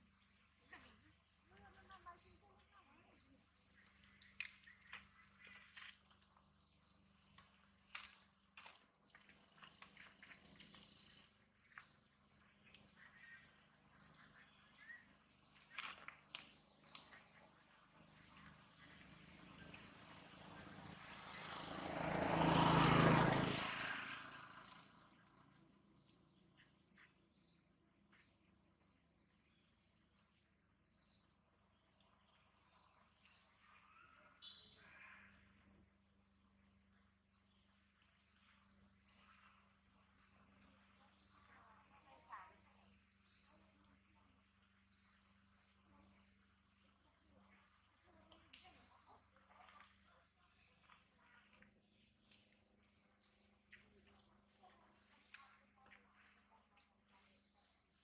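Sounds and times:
small birds chirping: 0.0s - 58.0s.

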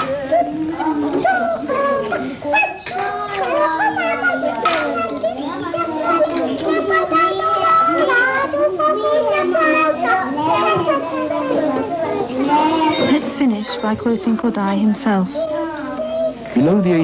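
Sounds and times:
young children calling out: 0.0s - 14.4s, 15.1s - 17.0s.

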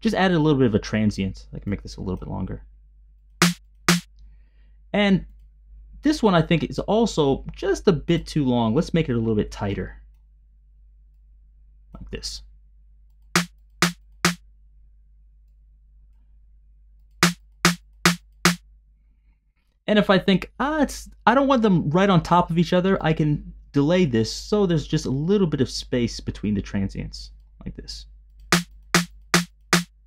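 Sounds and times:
electronic snare hits: 3.4s - 4.1s, 13.4s - 14.4s, 17.2s - 18.6s, 28.5s - 30.0s.

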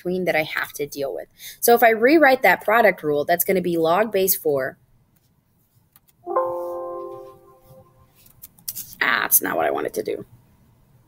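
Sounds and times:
computer alert chime: 6.3s - 8.1s.

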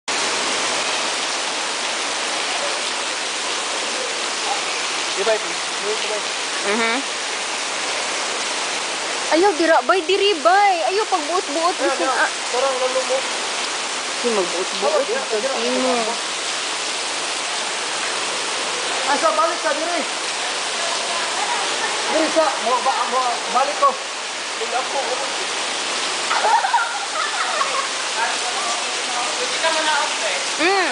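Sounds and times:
voices: 9.3s - 13.4s, 14.2s - 16.2s, 18.9s - 25.4s, 26.3s - 30.9s
water splashing into a pool: 24.8s - 30.9s.

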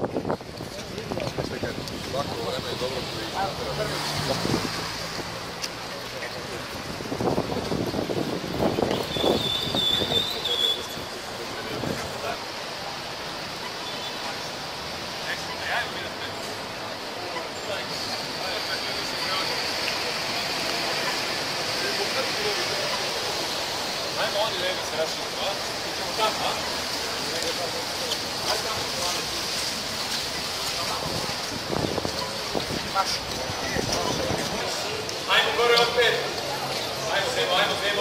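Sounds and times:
traffic hiss on wet road: 0.0s - 38.0s
people talking indistinctly: 0.6s - 7.5s, 8.8s - 38.0s.

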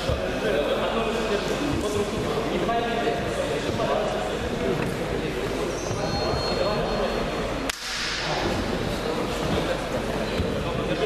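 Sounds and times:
murmur of voices in a hall: 0.0s - 11.0s
sharp crack: 7.7s - 8.4s.

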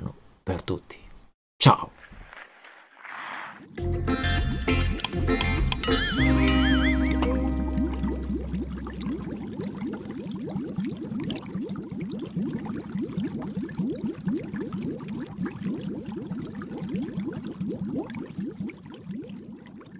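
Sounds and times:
rising bubbling blips: 5.8s - 19.9s.

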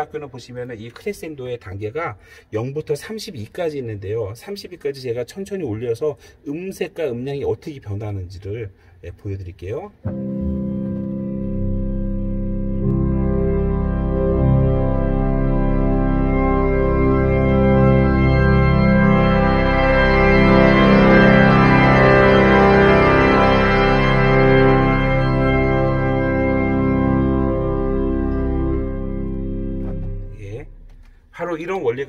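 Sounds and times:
pipe organ sustained chords: 10.0s - 32.0s.

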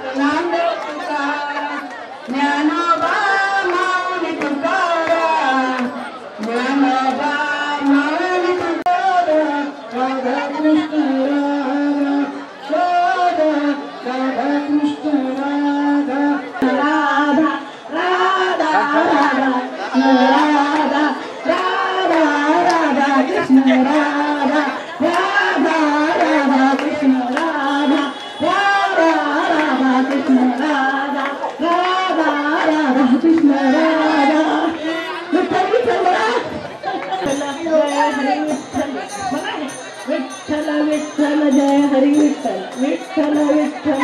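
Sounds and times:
woman singing devotional song: 0.0s - 44.0s.

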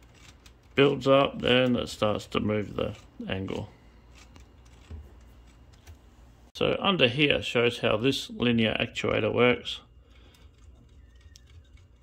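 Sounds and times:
plastic parts clicking: 0.0s - 1.7s, 10.1s - 12.0s.

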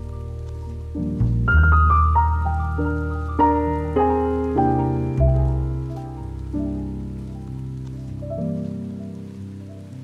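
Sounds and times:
slow keyboard chords: 0.0s - 10.0s.

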